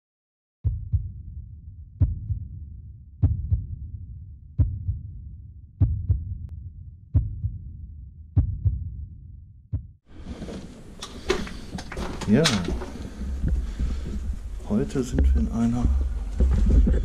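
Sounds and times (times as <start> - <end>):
heartbeat thumps: 0.6 - 1.4, 2.0 - 2.6, 3.2 - 6.5, 7.1 - 7.8, 8.4 - 9.1, 9.7 - 10.0, 13.0 - 17.0.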